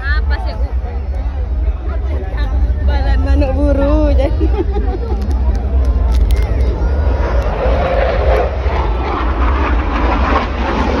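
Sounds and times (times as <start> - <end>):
aircraft flying overhead: 4.3 - 11.0.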